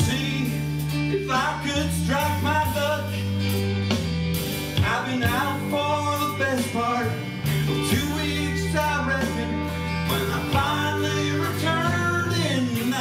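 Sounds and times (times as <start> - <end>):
bass guitar: 0.0 - 13.0
electric guitar: 0.0 - 13.0
keyboard: 0.0 - 13.0
strummed acoustic guitar: 0.0 - 13.0.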